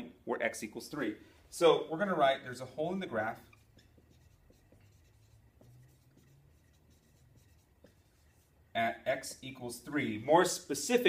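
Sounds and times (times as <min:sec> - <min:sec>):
marker writing on whiteboard: 0:02.5 - 0:09.4.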